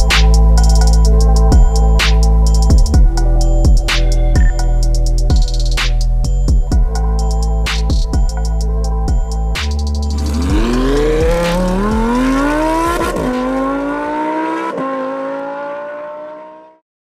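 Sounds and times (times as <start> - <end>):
electronic music: 0.0 - 15.4
sports car engine accelerating: 9.6 - 16.8.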